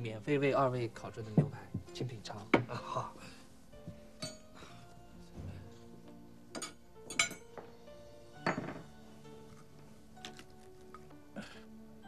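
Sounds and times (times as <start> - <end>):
soft background music: 0.0 - 12.0
cutlery clinking on a plate: 6.6 - 7.5, 8.5 - 8.9.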